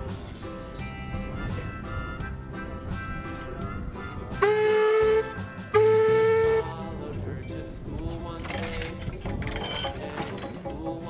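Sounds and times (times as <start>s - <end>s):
steam engine whistle blasts: 4.3s - 6.7s.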